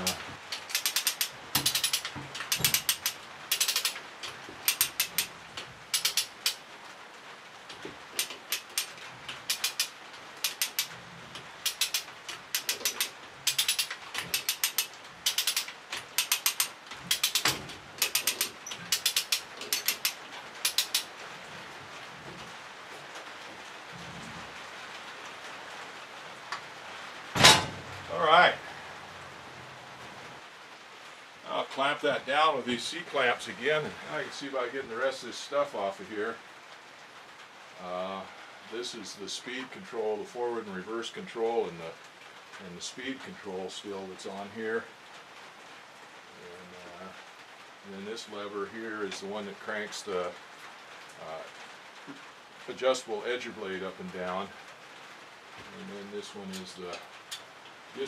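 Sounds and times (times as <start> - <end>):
ratchet clicking: 0.0 - 5.3, 5.9 - 6.6, 8.2 - 10.9, 11.6 - 21.1.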